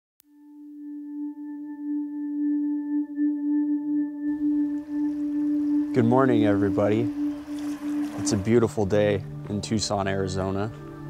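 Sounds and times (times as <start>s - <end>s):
singing bowl ringing: 4.3s - 8.7s.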